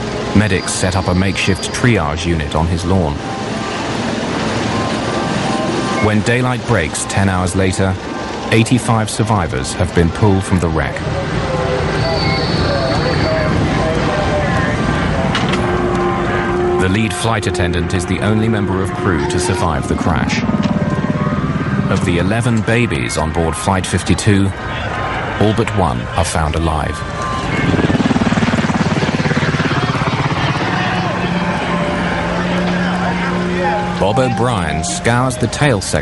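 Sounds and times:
helicopter rotor beating: 0.0s - 25.4s, 27.0s - 35.5s
vehicle engines rumbling: 0.0s - 36.0s
indistinct voices: 5.9s - 20.8s, 29.3s - 36.0s.

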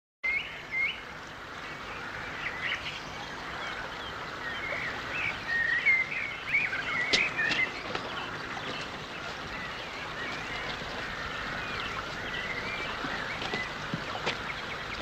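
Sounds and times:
songbirds chirping: 0.2s - 15.0s.

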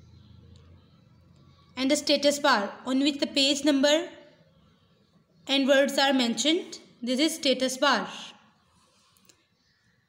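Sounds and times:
woman speaking: 1.8s - 4.3s, 5.5s - 8.5s.

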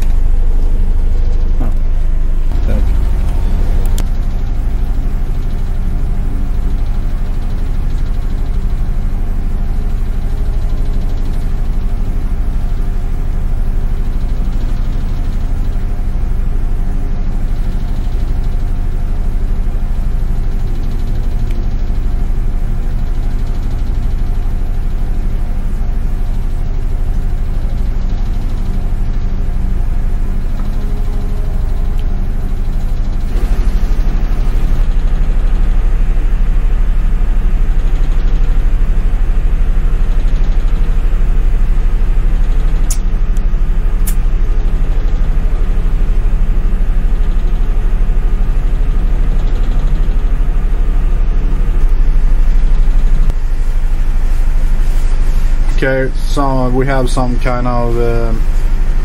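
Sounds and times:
ship engine hum: 0.0s - 6.0s
sharp clicks: 2.5s - 4.2s, 42.8s - 44.3s.

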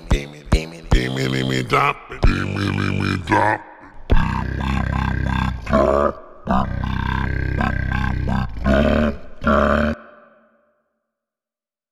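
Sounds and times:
man making rattling vocal noises: 0.0s - 10.0s.

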